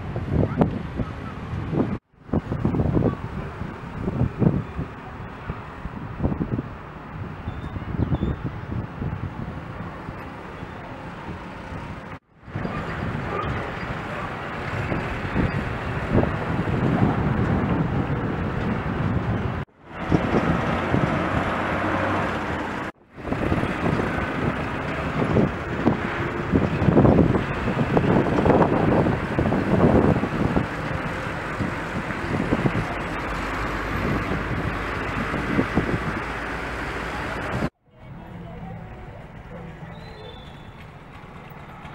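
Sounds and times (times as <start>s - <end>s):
road traffic: 0.0s - 41.9s.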